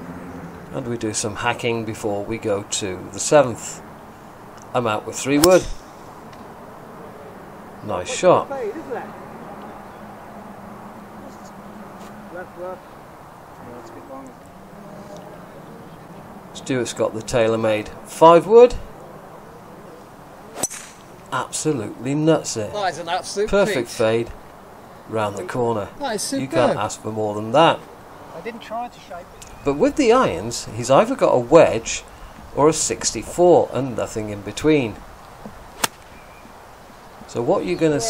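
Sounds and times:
golf club striking ball: 0:05.4 - 0:06.5, 0:20.5 - 0:21.3, 0:35.7 - 0:36.5.

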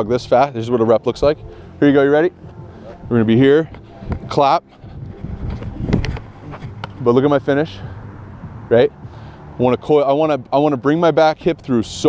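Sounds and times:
wind buffeting microphone: 0:02.6 - 0:10.1.

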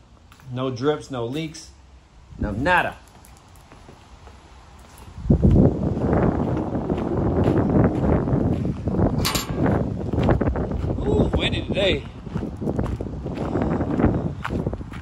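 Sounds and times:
wind buffeting microphone: 0:02.2 - 0:03.0, 0:04.8 - 0:15.0.

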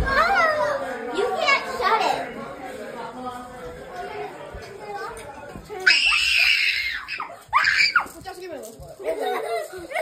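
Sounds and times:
girls screaming: 0:05.9 - 0:08.1.

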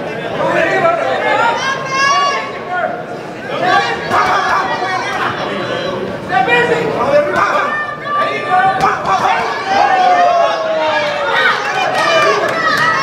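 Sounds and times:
spectators shouting and chattering: 0:00.0 - 0:13.0.

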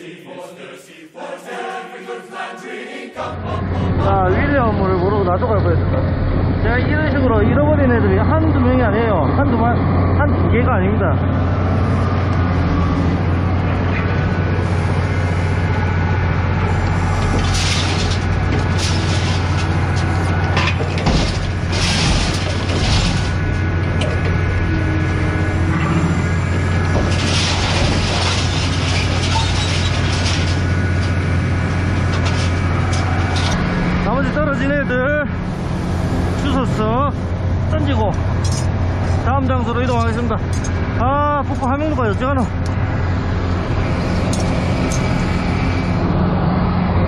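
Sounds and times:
diesel truck engine running: 0:03.2 - 0:47.0.

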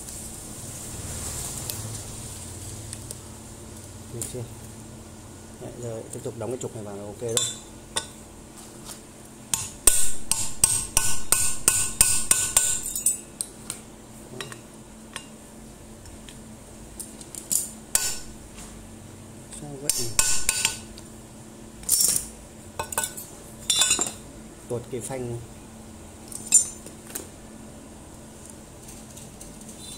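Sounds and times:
sharp metallic knocks: 0:09.6 - 0:12.9, 0:19.9 - 0:20.8
metal clinks: 0:26.3 - 0:26.8.

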